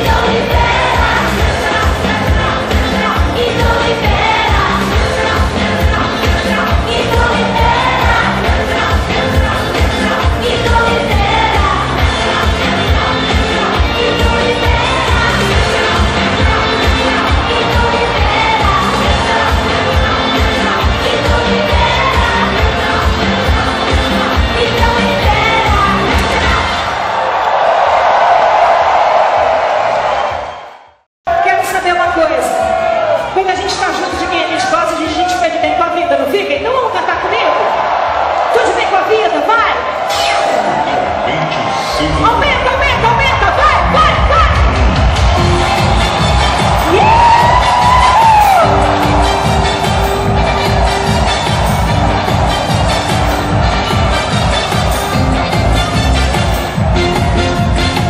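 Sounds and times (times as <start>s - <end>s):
live pop song: 0.0s - 27.0s, 40.1s - 58.0s
concert crowd cheering and screaming: 3.4s - 36.2s, 36.8s - 58.0s.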